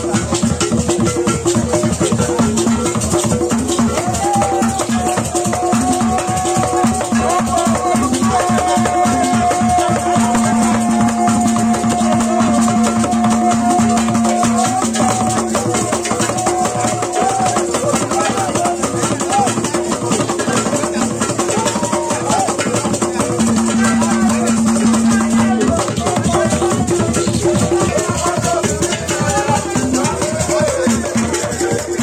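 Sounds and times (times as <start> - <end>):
hand drums: 0.0 - 32.0
voices: 0.0 - 32.0.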